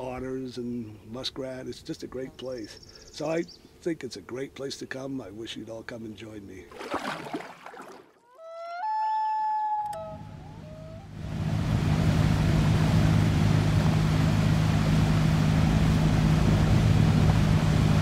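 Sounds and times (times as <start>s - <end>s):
loon wailing: 8.2s - 11.2s
engine drone with low hum: 10.1s - 18.0s.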